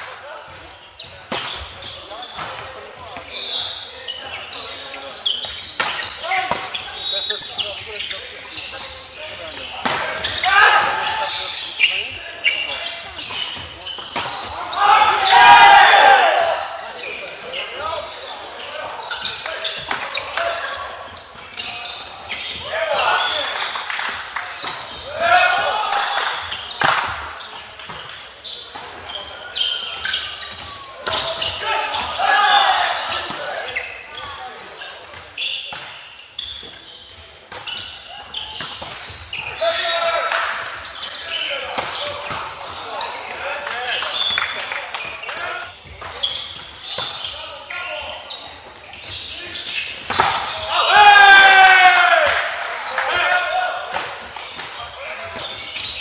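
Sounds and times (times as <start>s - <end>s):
players shouting: 9.4s - 12.8s, 14.2s - 21.0s, 21.9s - 26.7s, 31.0s - 33.8s, 50.2s - 54.0s.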